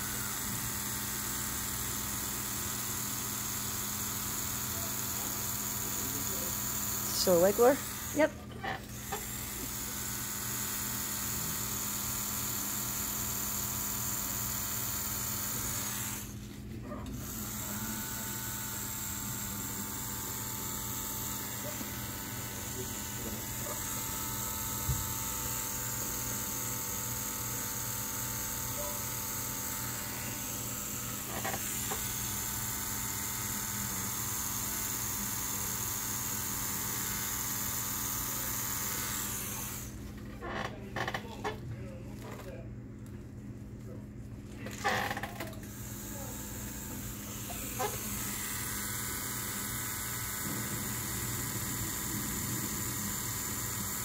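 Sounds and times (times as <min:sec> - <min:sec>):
tattoo machine buzzing: 0:00.0 - 0:16.5, 0:17.2 - 0:41.5, 0:44.6 - 0:54.0.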